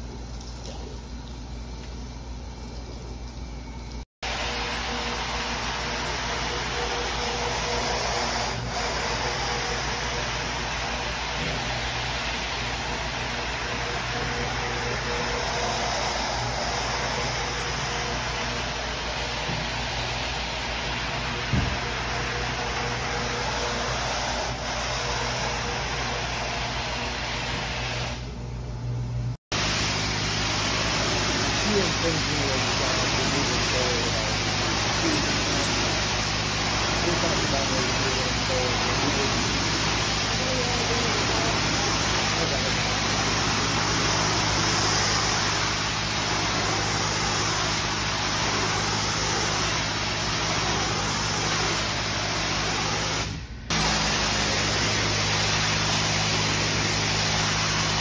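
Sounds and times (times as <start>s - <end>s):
brush churning wet rug: 4.2s - 28.0s, 29.5s - 58.0s
pressure washer hissing: 4.2s - 28.3s, 29.5s - 58.0s
floor scrubber motor hum: 4.2s - 28.4s, 29.5s - 58.0s.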